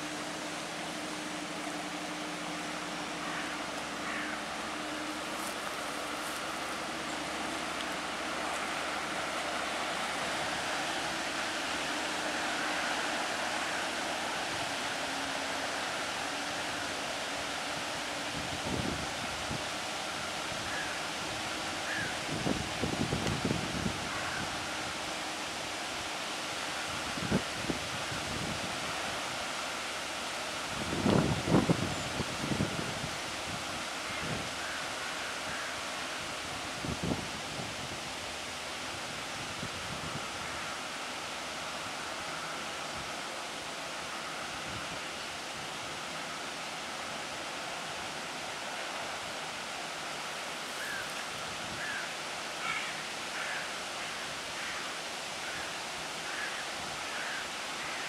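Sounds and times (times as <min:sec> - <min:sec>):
wake washing along bank: 0:00.0 - 0:58.0
wind: 0:00.0 - 0:58.0
wind buffeting microphone: 0:30.7 - 0:34.6.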